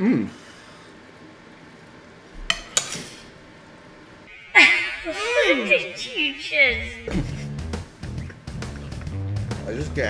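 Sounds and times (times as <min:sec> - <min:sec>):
fork clinking against plate: 0:02.4 - 0:03.2.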